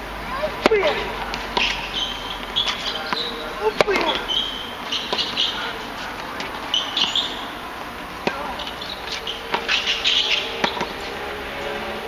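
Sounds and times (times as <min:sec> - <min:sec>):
tennis ball struck by rackets: 0:00.3 - 0:11.0
ball bouncing on hard court: 0:00.6 - 0:05.6, 0:06.2 - 0:07.4, 0:08.2 - 0:11.0
high chirping: 0:01.6 - 0:05.8, 0:06.6 - 0:07.6, 0:08.6 - 0:11.0.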